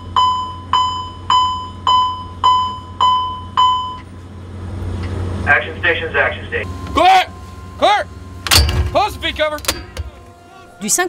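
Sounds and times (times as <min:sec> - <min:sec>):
low steady hum: 0:00.0 - 0:11.0
alarm bell ringing: 0:06.7 - 0:10.4.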